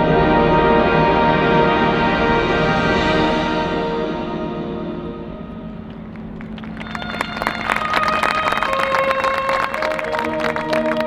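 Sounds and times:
marching band playing: 0:06.0 - 0:11.0.

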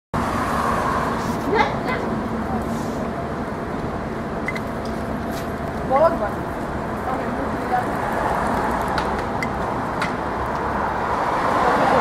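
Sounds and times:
street traffic noise: 0:00.2 - 0:12.0.

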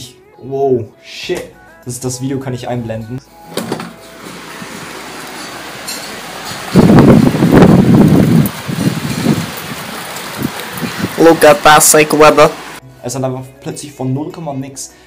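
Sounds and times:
heavy rain pouring: 0:04.2 - 0:12.8.

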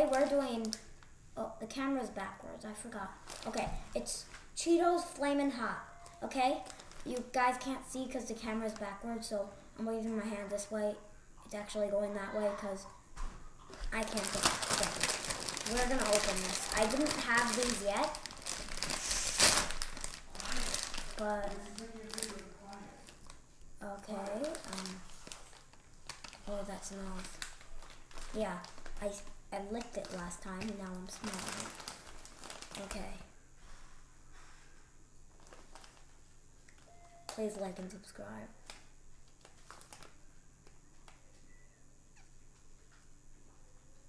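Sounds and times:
snack bag crinkling: 0:03.2 - 0:03.8, 0:06.0 - 0:07.3, 0:13.6 - 0:33.2, 0:35.3 - 0:37.5, 0:38.6 - 0:40.2.

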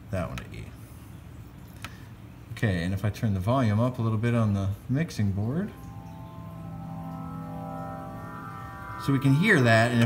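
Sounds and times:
synthesizer sustained chord: 0:05.3 - 0:10.0.

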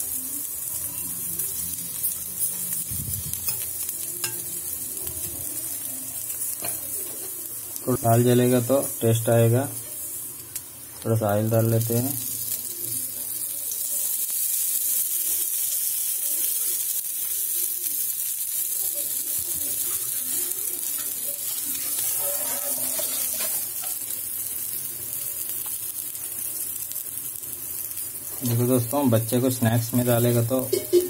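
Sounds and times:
oil sizzling in a pan: 0:00.0 - 0:31.0.

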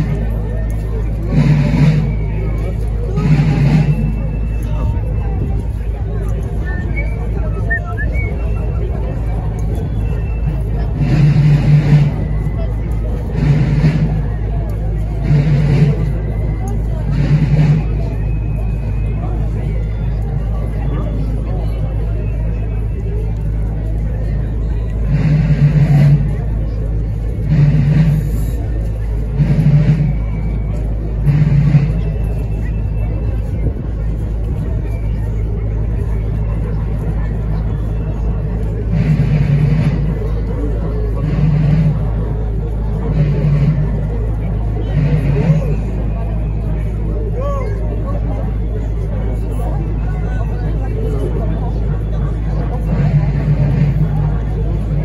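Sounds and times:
crowd chatter: 0:00.0 - 0:55.0
steady low rumble: 0:00.0 - 0:55.0.

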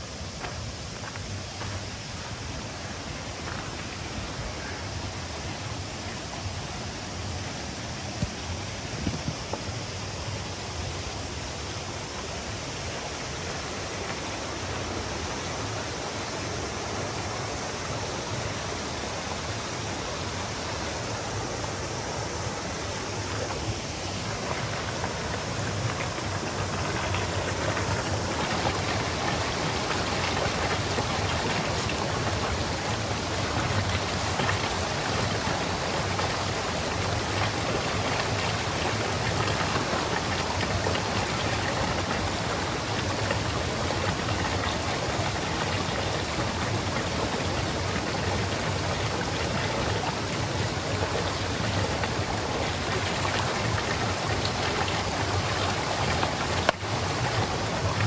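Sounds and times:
stream running over rocks: 0:00.0 - 0:58.0.

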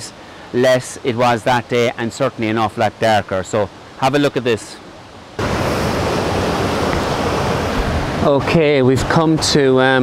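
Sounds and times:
river rapids rushing: 0:03.7 - 0:10.0.

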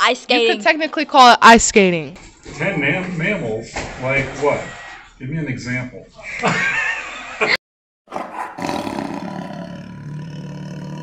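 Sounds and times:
man laughing: 0:06.2 - 0:07.6
big cat roar: 0:08.2 - 0:11.0.

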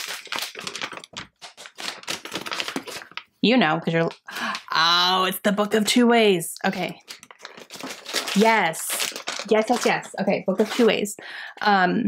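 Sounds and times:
wrapping paper tearing and crinkling: 0:00.0 - 0:03.3, 0:06.9 - 0:11.1.

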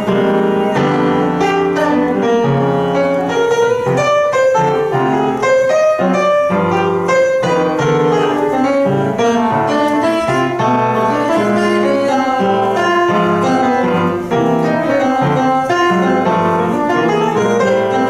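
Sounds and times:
solo jazz piano: 0:00.0 - 0:18.0.

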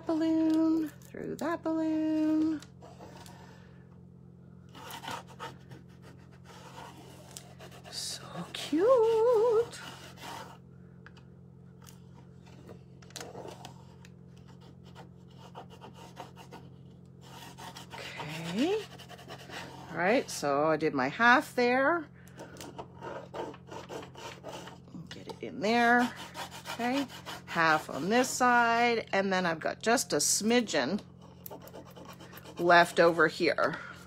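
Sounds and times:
scratchy rubbing strokes: 0:04.7 - 0:08.2, 0:08.9 - 0:10.6, 0:25.8 - 0:28.3, 0:31.2 - 0:33.3.

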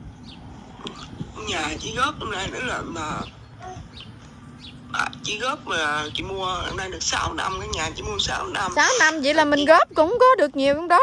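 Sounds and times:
low background rumble: 0:00.0 - 0:11.0
person speaking: 0:04.9 - 0:09.4.

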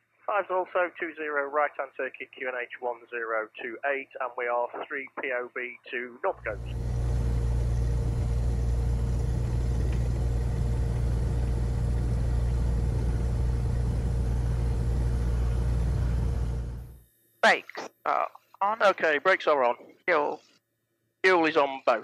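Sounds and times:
propeller aircraft engine running: 0:06.5 - 0:17.0.

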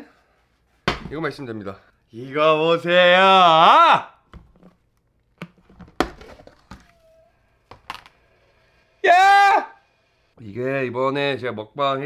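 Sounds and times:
man's high-pitched exclamation: 0:02.9 - 0:04.2, 0:09.0 - 0:09.8
plastic container clicks and knocks: 0:05.4 - 0:06.9.

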